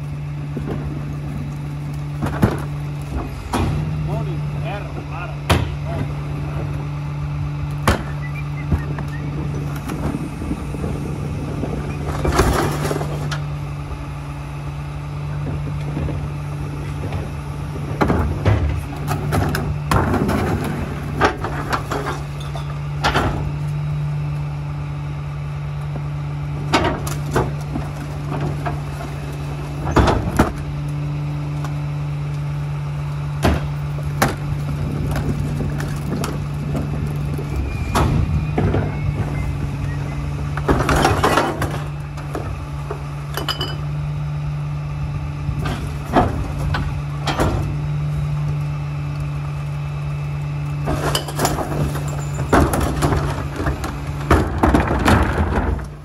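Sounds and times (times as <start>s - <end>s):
recyclables clattering into hopper: 40.6s - 42.4s, 50.8s - 56.0s.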